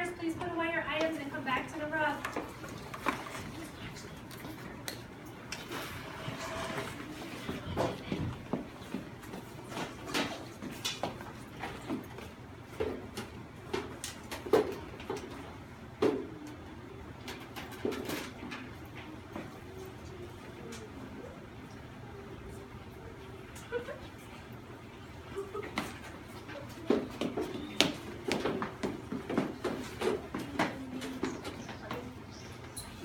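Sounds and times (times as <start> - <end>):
faint low voices: 5.9 - 9.6, 16.1 - 33.0.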